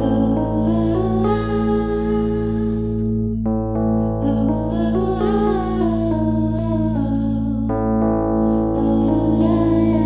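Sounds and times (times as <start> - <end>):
low drone: 0.0 - 10.0.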